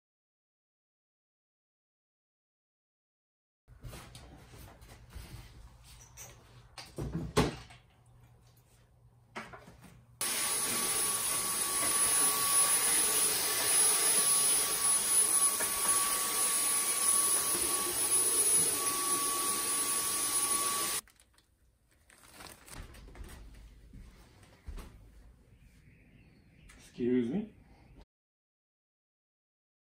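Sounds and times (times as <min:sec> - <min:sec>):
small vacuum cleaner whining: 0:10.2 - 0:21.0.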